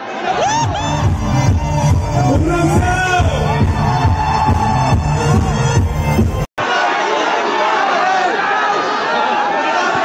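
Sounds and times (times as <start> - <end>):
electronic dance music over loudspeakers: 0.4 - 6.5.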